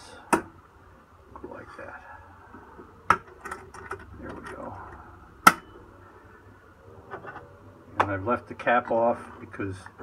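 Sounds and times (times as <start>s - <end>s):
electric furnace hum: 0.0s - 10.0s.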